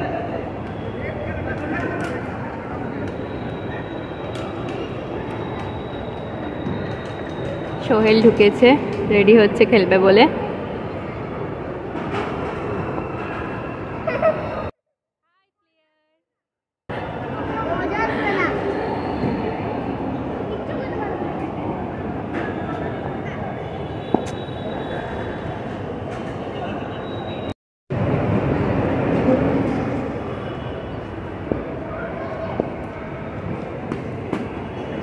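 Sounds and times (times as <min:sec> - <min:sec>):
people's voices: 0:00.0 - 0:14.7, 0:16.9 - 0:27.5
train rumbling: 0:27.9 - 0:35.0.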